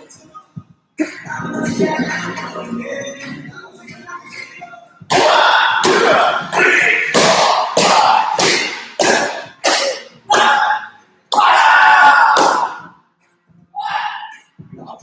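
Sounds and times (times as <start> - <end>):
martial arts shouts: 5.1 - 12.8.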